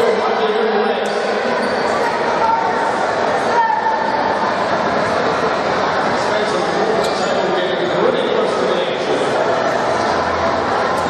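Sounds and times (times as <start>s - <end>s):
crowd chatter indoors: 0.0s - 11.0s.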